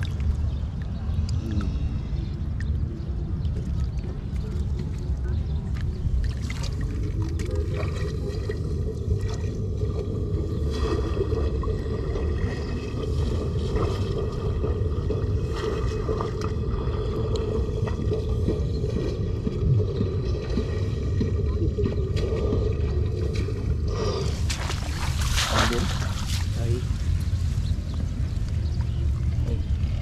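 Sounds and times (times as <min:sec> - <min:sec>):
low rumbling noise: 0:00.0 - 0:30.0.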